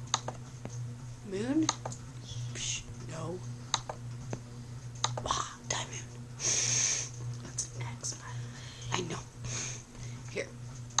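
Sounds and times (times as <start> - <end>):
steady low hum: 0.0 - 11.0
sharp clicks: 0.1 - 0.4, 5.0 - 5.3.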